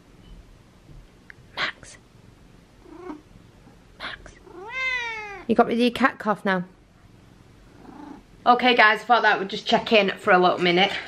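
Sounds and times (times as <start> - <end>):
cat meowing quietly: 4.5 - 5.5.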